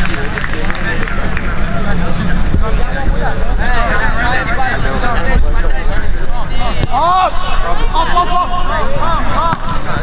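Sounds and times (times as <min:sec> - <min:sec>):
people shouting and calling out: 0:06.4 - 0:10.0.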